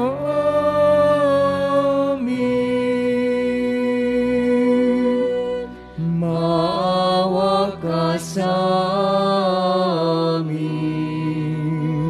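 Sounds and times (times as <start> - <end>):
person singing a hymn: 0.0 - 12.0.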